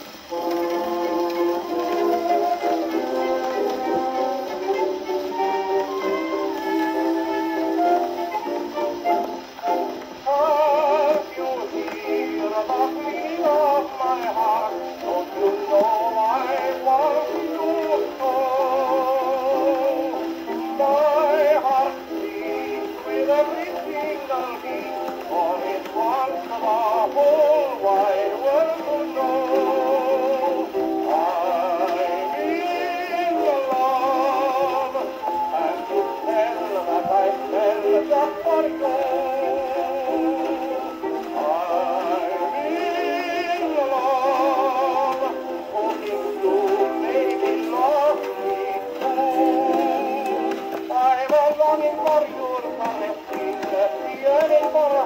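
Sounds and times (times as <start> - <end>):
old record playing on phonograph: 0.0 - 55.0.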